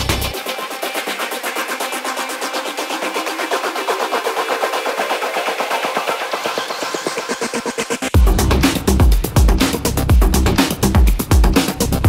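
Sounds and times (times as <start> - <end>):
fast drum roll: 8.2 - 12.0.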